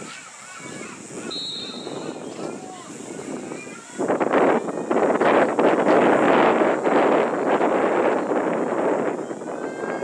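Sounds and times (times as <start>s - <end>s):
distant players and spectators shouting: 0.1s - 5.3s
referee's whistle blast: 1.3s - 2.2s.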